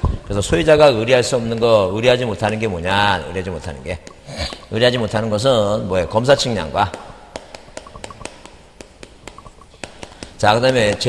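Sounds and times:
chalk tapping on chalkboard: 0:06.8 - 0:11.0.

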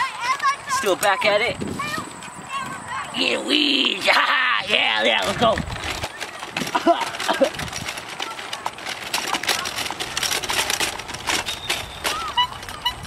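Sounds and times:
wheelchair rolling over grass: 0:00.0 - 0:13.0.

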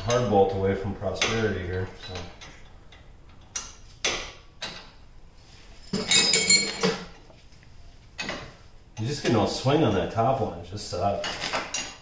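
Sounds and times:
wrench clinking on bolts: 0:05.9 - 0:07.1.

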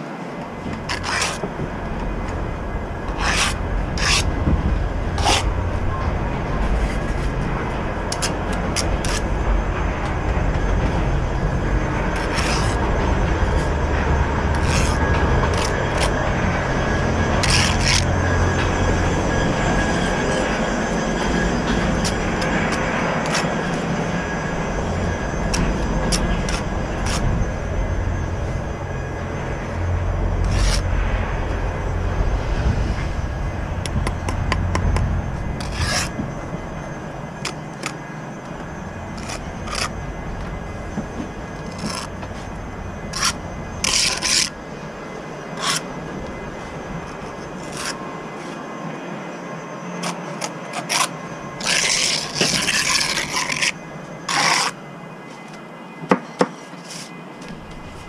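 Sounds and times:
low rumble: 0:00.5 - 0:48.1
trowel scraping mortar: 0:00.7 - 0:01.5, 0:03.0 - 0:04.4, 0:05.2 - 0:05.6, 0:08.1 - 0:09.4, 0:12.1 - 0:12.8, 0:14.5 - 0:16.6, 0:17.4 - 0:18.7, 0:21.7 - 0:23.9, 0:25.5 - 0:27.4, 0:30.4 - 0:30.9, 0:34.0 - 0:36.2, 0:37.4 - 0:38.0, 0:38.6 - 0:40.5, 0:41.1 - 0:44.6, 0:45.6 - 0:45.9, 0:47.0 - 0:48.6, 0:50.0 - 0:54.8.

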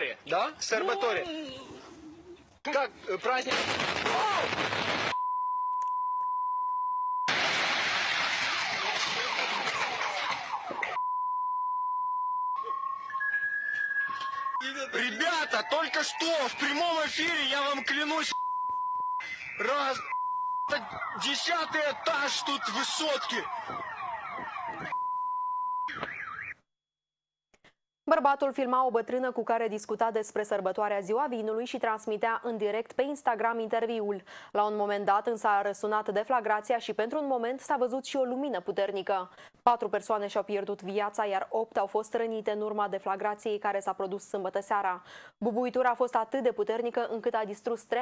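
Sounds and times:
censorship bleeps: 0:05.1 - 0:07.3, 0:11.0 - 0:26.6
car alarm beeping and warbling: 0:09.2 - 0:26.6
voices: 0:14.6 - 0:18.4, 0:19.2 - 0:20.1, 0:20.7 - 0:23.6.

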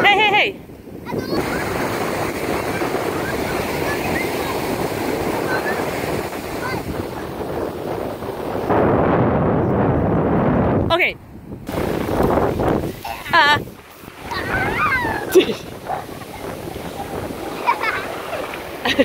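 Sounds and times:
ocean surf washing ashore: 0:00.0 - 0:19.0
wind on microphone: 0:00.0 - 0:19.0.

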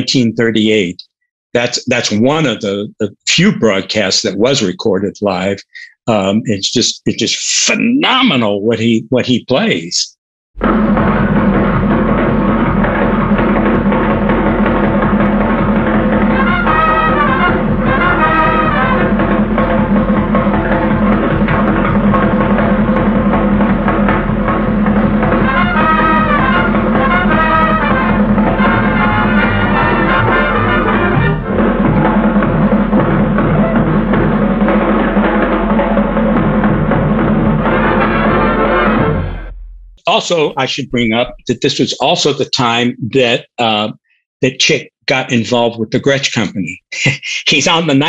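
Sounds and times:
fast swing big band: 0:10.6 - 0:42.8.

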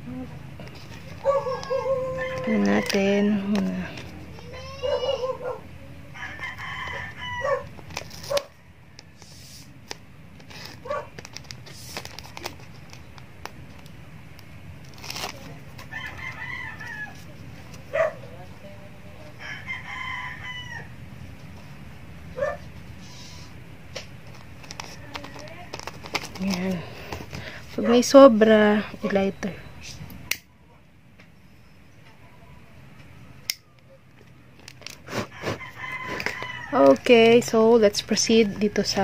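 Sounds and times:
rooster crowing: 0:01.2 - 0:03.5, 0:06.1 - 0:07.7, 0:15.8 - 0:17.3, 0:19.3 - 0:21.0, 0:35.1 - 0:37.0
ribbon and tape rustling: 0:07.7 - 0:08.5, 0:09.2 - 0:14.0, 0:14.8 - 0:18.0, 0:24.0 - 0:28.1.

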